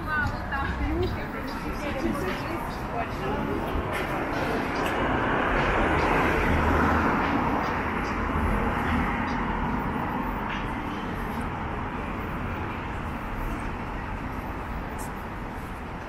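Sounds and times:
car passing by: 3.2s - 15.8s.

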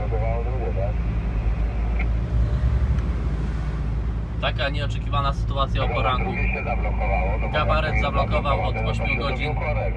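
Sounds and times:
lorry diesel engine running: 0.0s - 9.9s.

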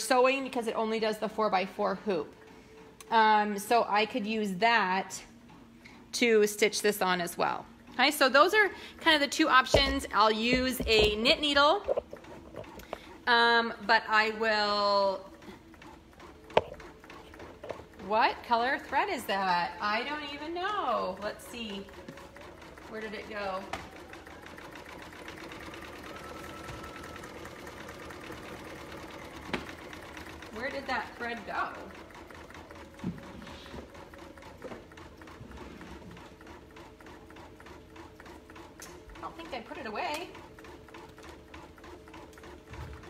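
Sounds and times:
embroidery machine needle clatter: 7.9s - 43.0s.

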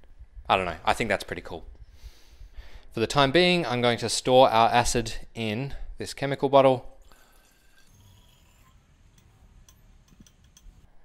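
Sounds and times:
liquid trickling into glass bottle: 7.0s - 9.2s
small drips and ticks: 7.0s - 10.9s.

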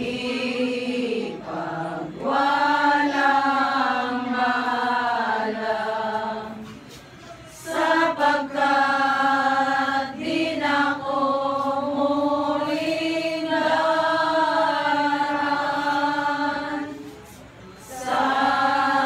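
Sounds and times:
choir singing long notes: 0.0s - 19.0s.

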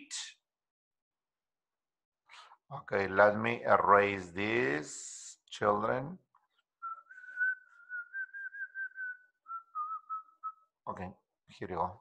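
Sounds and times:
man whistling softly: 6.8s - 10.7s.

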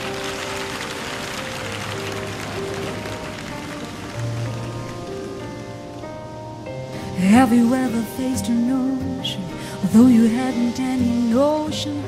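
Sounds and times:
held keyboard chords: 0.0s - 12.0s
soft hiss: 0.0s - 12.0s.

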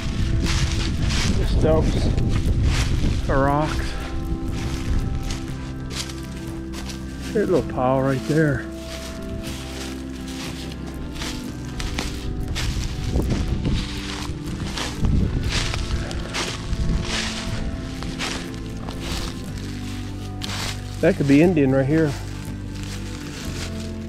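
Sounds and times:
background music: 0.0s - 24.0s
footsteps through dry leaves: 0.0s - 24.0s.

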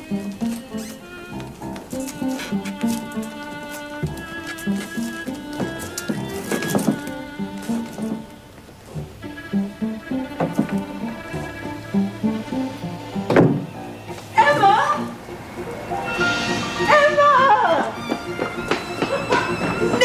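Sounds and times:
incidental score with repeating notes: 2.1s - 20.0s
knocks: 10.4s - 11.8s, 13.2s - 13.8s.

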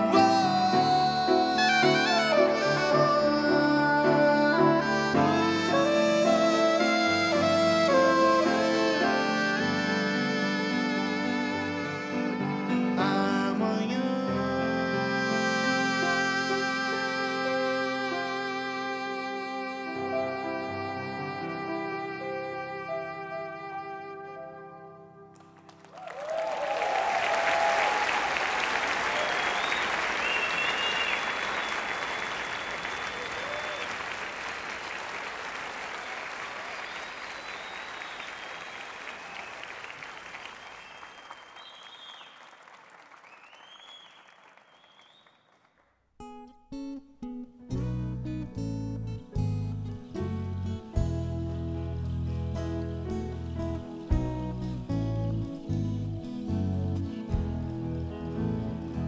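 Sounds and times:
audience applauding and cheering: 25.3s - 45.8s
plucked acoustic guitar: 46.2s - 59.0s
bass guitar: 47.6s - 59.0s
song's held chord: 47.9s - 59.0s.

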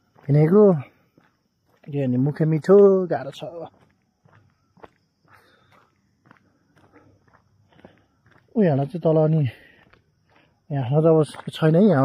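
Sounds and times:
footsteps on dirt road: 0.0s - 12.0s.

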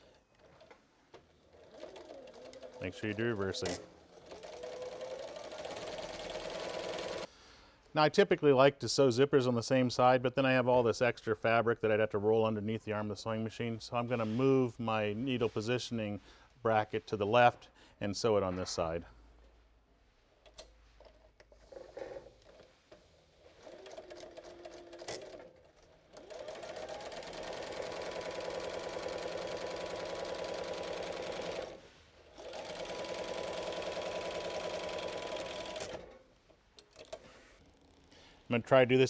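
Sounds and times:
sewing machine stitching: 1.4s - 7.3s, 23.4s - 36.1s.

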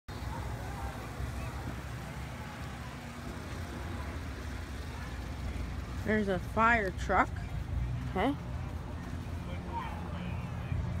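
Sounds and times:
truck engine idling: 0.1s - 11.0s.

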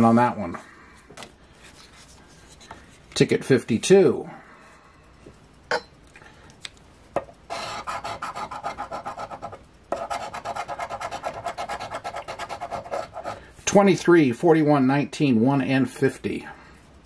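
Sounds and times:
coin scratching lottery ticket: 7.5s - 13.4s.

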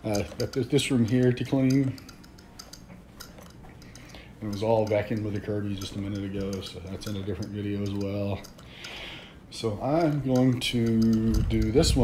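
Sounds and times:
faint irregular clicks and ticks: 0.0s - 12.0s.

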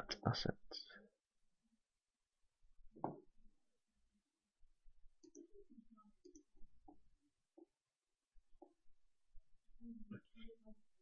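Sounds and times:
computer mouse clicks: 5.2s - 5.6s, 6.2s - 7.0s.

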